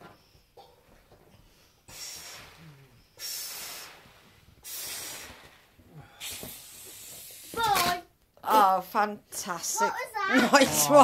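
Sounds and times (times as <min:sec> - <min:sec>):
child blowing into balloon: 0:01.9 - 0:07.8.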